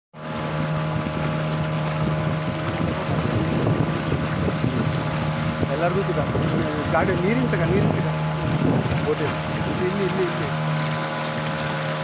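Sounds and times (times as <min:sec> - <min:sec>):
boat motor humming: 0:00.2 - 0:12.0.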